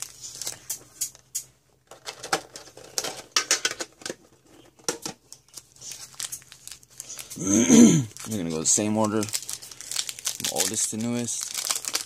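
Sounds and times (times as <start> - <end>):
packs handled in metal tin: 0.0 - 7.4, 8.1 - 12.0.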